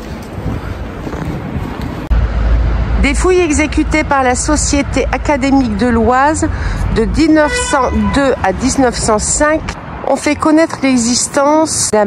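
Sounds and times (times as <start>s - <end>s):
wind on microphone: 0.0s - 10.0s
low rumble: 1.4s - 10.0s.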